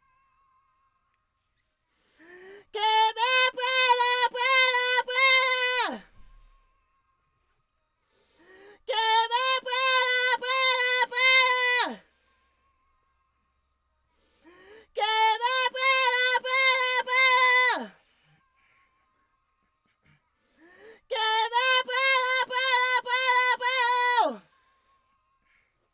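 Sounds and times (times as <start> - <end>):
singing voice holding high note: 2.2 - 7.2, 8.3 - 13.4, 14.4 - 19.2, 20.0 - 25.9
person singing high note: 21.1 - 24.6.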